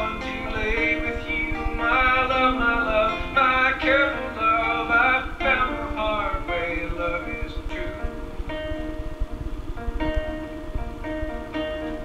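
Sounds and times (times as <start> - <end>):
person singing: 0.0 - 8.4.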